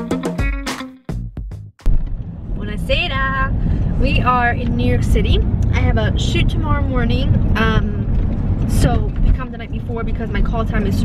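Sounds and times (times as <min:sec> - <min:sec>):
car road and engine rumble: 0:01.8 - 0:11.0
woman talking: 0:02.6 - 0:11.0.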